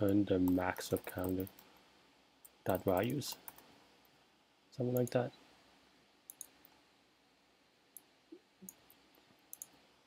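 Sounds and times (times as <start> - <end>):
keyboard and mouse clicks: 2.4 - 3.7, 6.3 - 6.6, 8.0 - 9.8.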